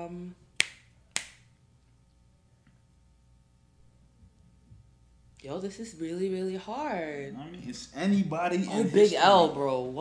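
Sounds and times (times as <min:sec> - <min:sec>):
finger snap: 0:00.6 - 0:01.5.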